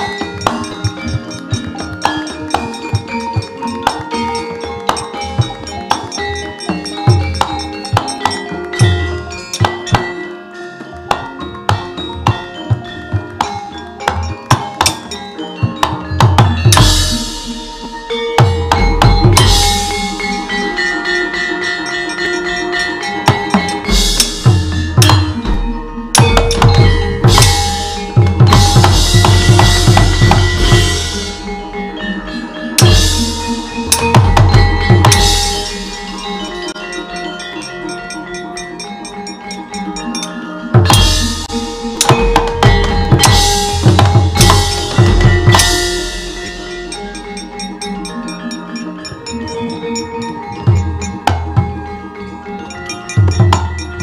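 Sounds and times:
ringing metallophone notes: 0.0s - 54.0s
loud sharp drum strikes: 23.9s - 31.6s, 40.8s - 46.8s.

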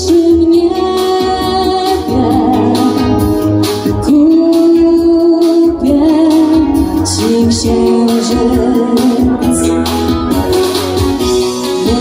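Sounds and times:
woman singing: 0.0s - 9.8s, 11.6s - 12.0s
instrumental accompaniment: 0.0s - 12.0s.

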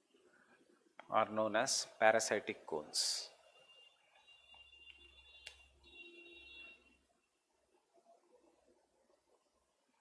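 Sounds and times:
faint high whine: 3.1s - 8.8s.

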